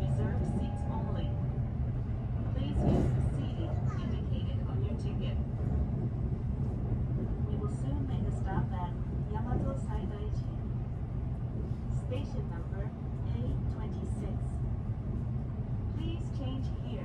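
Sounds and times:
electric train running rumble: 0.0s - 17.0s.

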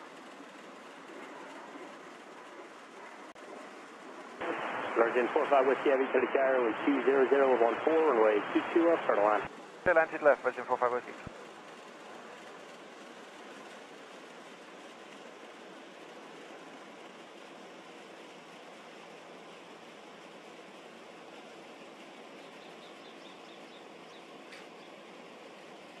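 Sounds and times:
faint hiss-like background noise: 0.0s - 26.0s.

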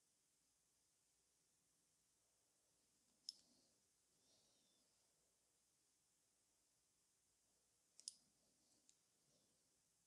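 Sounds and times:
faint sharp click: 8.0s - 8.2s.

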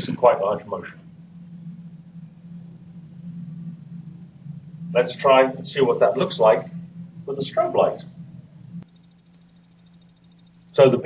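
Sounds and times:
steady low hum: 0.0s - 11.0s
rapid high-pitched ticking: 8.8s - 11.0s.

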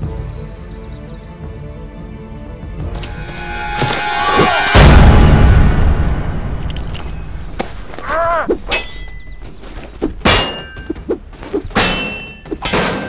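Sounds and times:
swords clashing on metal shields: 8.7s - 9.4s, 10.2s - 11.1s, 11.7s - 13.0s.

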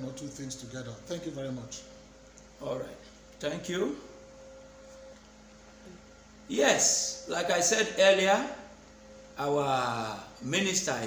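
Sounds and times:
low mains hum: 0.0s - 11.0s
thin electrical tone: 0.0s - 11.0s.

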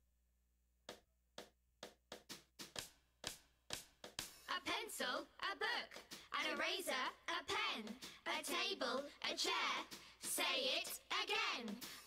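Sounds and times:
drum beat: 0.9s - 12.0s.

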